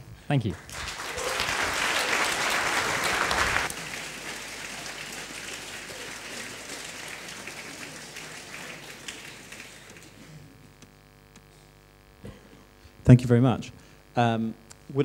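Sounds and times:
audience applause: 0:00.6 - 0:10.8.

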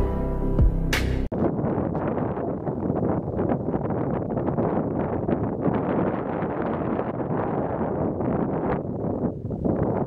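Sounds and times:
wind buffeting microphone: 0:01.2 - 0:10.0.

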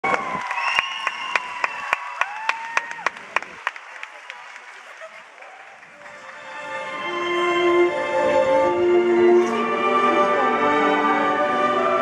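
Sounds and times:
sharp claps close to microphone: 0:00.0 - 0:06.4
audience applauding: 0:00.0 - 0:06.7.

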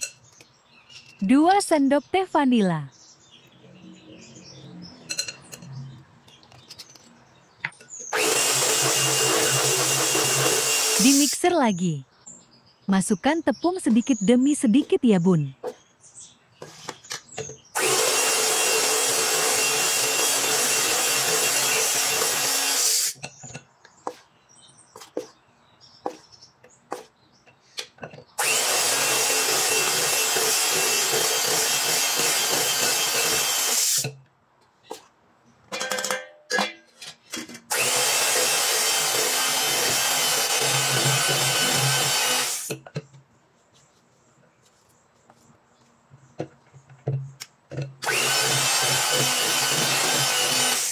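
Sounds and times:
electric hand mixer whining: 0:08.1 - 0:11.4, 0:17.8 - 0:23.2, 0:28.4 - 0:34.1, 0:37.7 - 0:42.8, 0:48.0 - 0:50.9
knocks and scrapes: 0:16.6 - 0:17.6.

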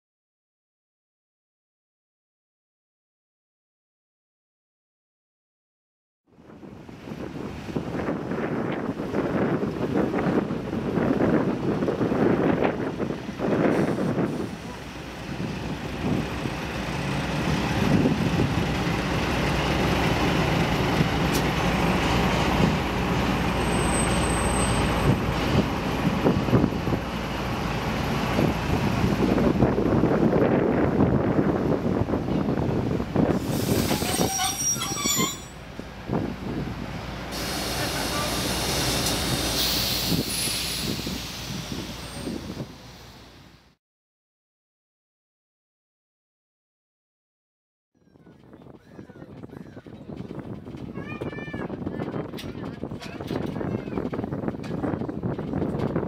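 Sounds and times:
diesel locomotive engine rumbling: 0:06.3 - 0:43.8, 0:48.0 - 0:56.0
voices: 0:37.6 - 0:38.6, 0:48.1 - 0:54.3.

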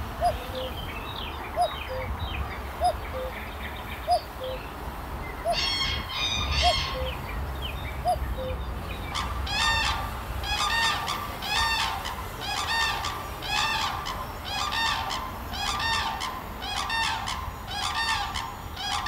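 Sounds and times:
bird calling: 0:00.0 - 0:19.0.

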